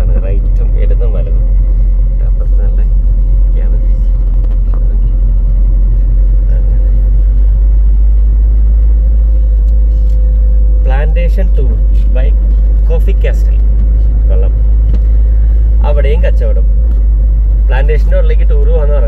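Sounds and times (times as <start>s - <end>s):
car driving on road rumble: 0.0s - 19.0s
faint steady hum: 0.0s - 19.0s.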